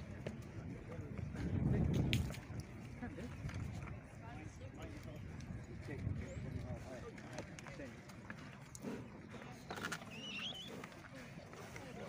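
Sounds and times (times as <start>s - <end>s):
horse hooves clopping: 0.0s - 12.0s
murmur of people talking: 0.0s - 12.0s.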